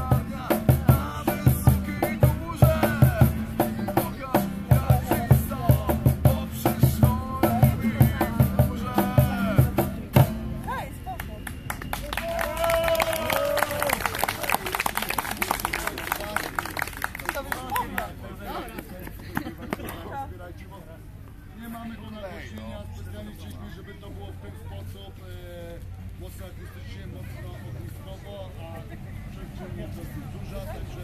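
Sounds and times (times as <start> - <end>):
person singing: 0.0 - 9.8
acoustic band playing: 0.0 - 11.1
cajon beat: 0.0 - 12.0
audience clapping and cheering: 11.2 - 18.2.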